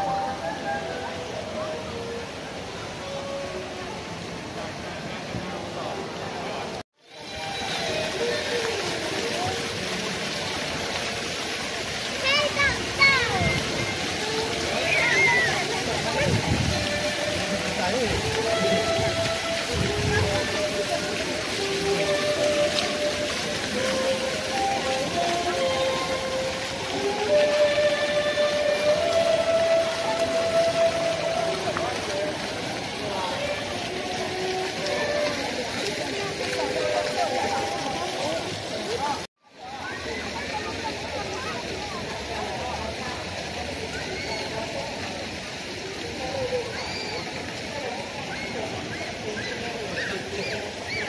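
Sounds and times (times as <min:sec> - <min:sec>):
crowd chatter: 0:00.0 - 0:51.0
faint voices: 0:00.0 - 0:51.0
fountain splashing into pool: 0:00.0 - 0:51.0.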